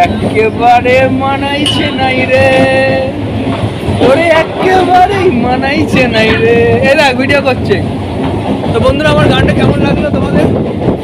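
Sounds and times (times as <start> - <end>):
train rumbling along track: 0.0 - 11.0.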